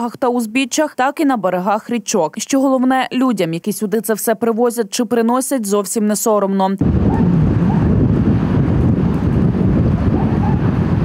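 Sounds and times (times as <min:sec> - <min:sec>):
wind buffeting microphone: 0:06.8 - 0:11.0.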